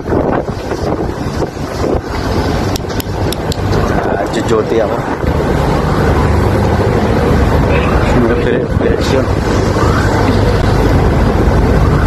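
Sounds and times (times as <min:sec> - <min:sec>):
ship machinery drone: 0:00.0 - 0:12.0
wind on microphone: 0:00.0 - 0:12.0.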